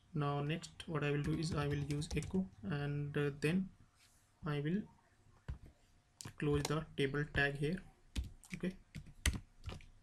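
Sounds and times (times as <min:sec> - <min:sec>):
computer keyboard typing: 0:01.2 - 0:02.4, 0:08.2 - 0:09.9.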